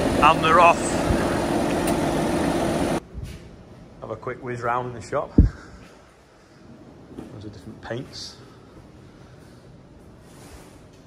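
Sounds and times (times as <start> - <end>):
tractor diesel engine running: 0.0 - 3.0.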